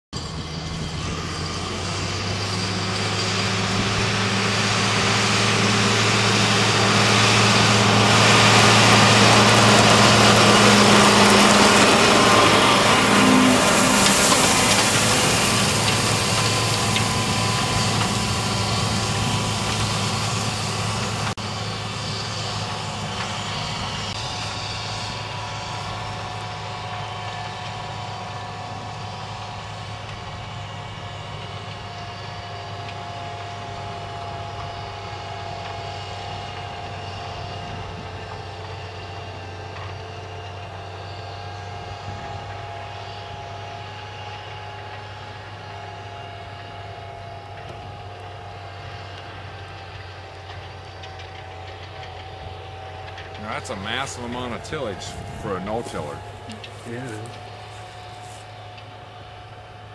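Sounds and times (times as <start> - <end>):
implement rushing and rattling: 0.2 - 27.2
tractor engine running: 0.2 - 59.9.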